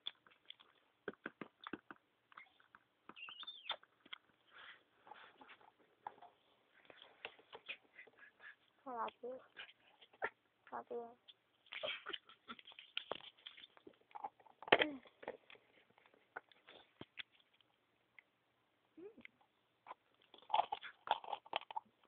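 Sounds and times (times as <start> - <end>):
plastic figures clicking and tapping: 0.0 - 4.3.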